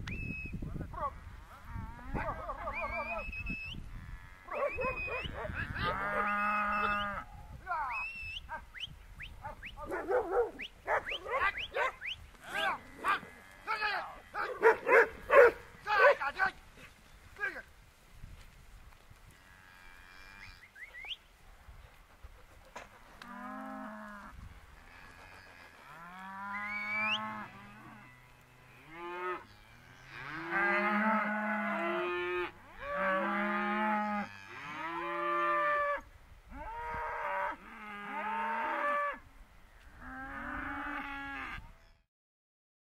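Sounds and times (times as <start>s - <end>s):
cattle mooing: 4.0s - 7.2s, 23.2s - 36.0s, 40.0s - 41.6s.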